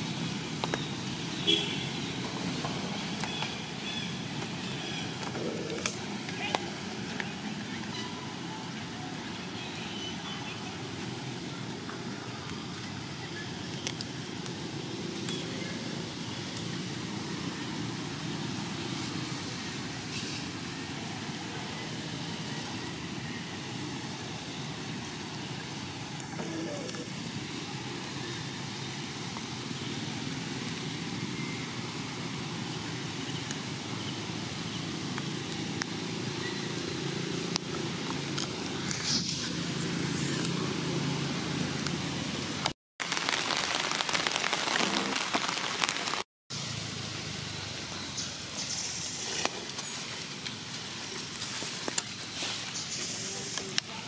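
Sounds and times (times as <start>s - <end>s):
steady background noise: 0.0s - 43.3s.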